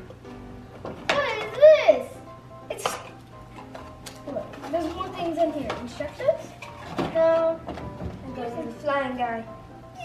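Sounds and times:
quiet background music: 0.0s - 10.0s
child exclaiming: 1.1s - 3.0s.

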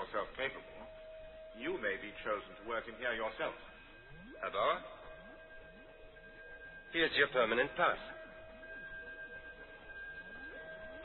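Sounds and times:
faint hum of high tones: 0.0s - 11.0s
wavering pitch glides: 4.0s - 11.0s.

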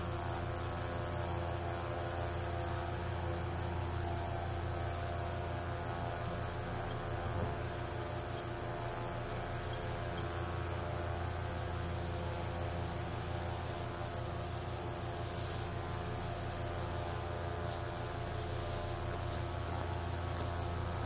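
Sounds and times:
low steady hum: 0.0s - 21.0s
high-pitched insect trill: 0.1s - 21.0s.

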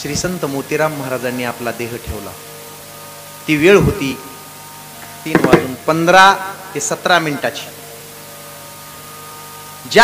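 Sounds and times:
electrical hum: 0.0s - 10.0s
faint microphone hiss: 0.0s - 10.0s
thin steady tones: 0.0s - 10.0s
man speaking: 5.3s - 7.4s.

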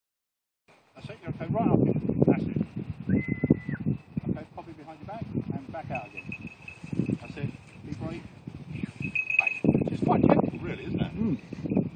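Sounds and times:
high ringing tone: 5.9s - 7.8s, 8.8s - 9.8s.

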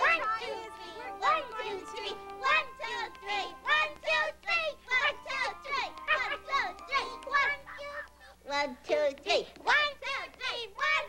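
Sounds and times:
high-pitched puppet voices chattering: 0.0s - 11.0s
waltz music from tape: 0.0s - 11.0s.

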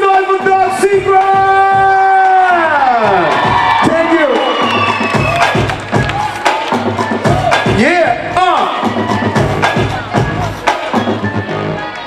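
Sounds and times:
audience cheering and shouting: 0.0s - 12.0s
music with a beat: 0.1s - 12.0s.

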